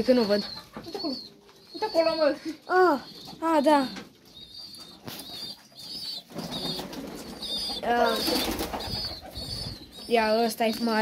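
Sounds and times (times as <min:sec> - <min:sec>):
pigeons: 0:00.0 - 0:11.0
wings flapping: 0:06.1 - 0:09.9.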